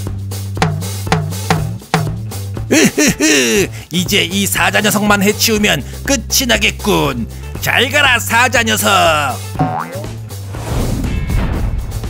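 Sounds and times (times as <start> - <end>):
background music: 0.0 - 12.0
person speaking: 2.7 - 5.3, 8.9 - 10.2
rising boing glide: 9.6 - 10.1.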